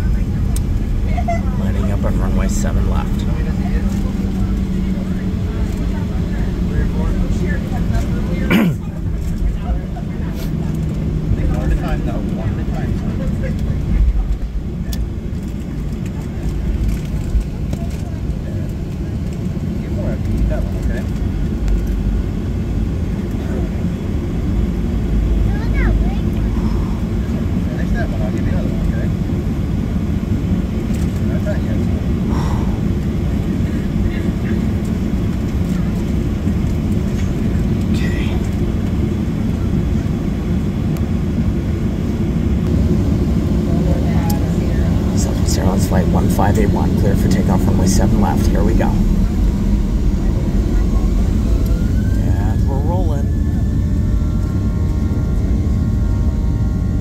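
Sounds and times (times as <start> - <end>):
aircraft cabin engine rumble: 0.0 - 57.0.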